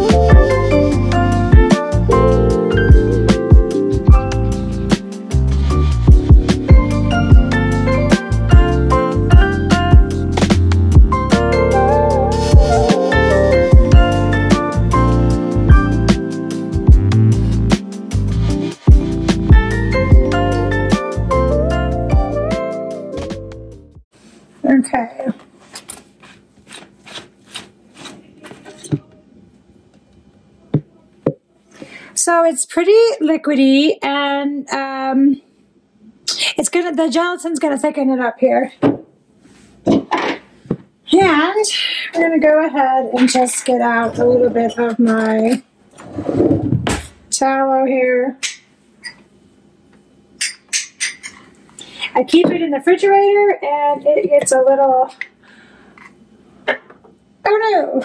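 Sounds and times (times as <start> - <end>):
spoon clinking glass jar: 50.4 - 51.4.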